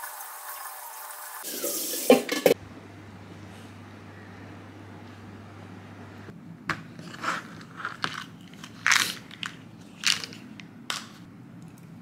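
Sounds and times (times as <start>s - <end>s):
low steady hum: 2.5s - 12.0s.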